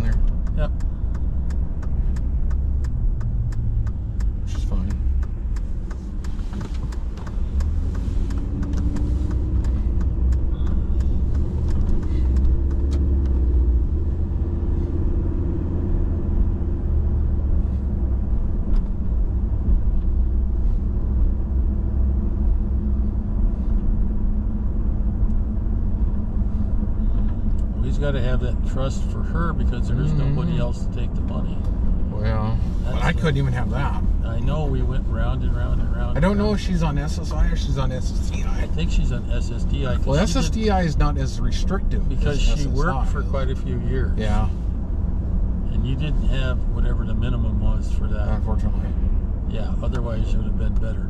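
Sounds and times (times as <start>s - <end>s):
car interior road noise: 0.0s - 51.0s.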